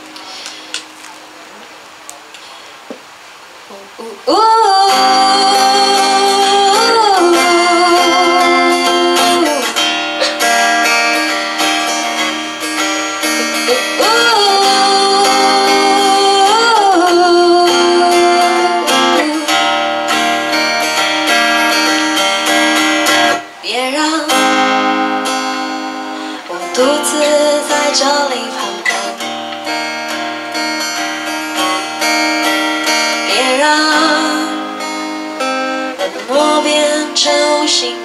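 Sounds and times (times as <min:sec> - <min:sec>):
strummed acoustic guitar: 0:04.4 - 0:38.0.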